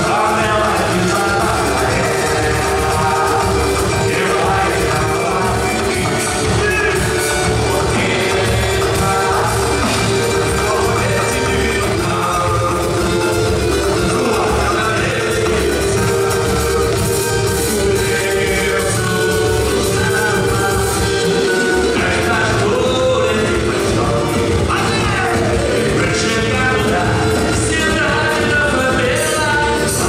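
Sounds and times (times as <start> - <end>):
drum kit: 0.0 - 30.0
hand drums: 0.0 - 30.0
man singing: 0.0 - 30.0.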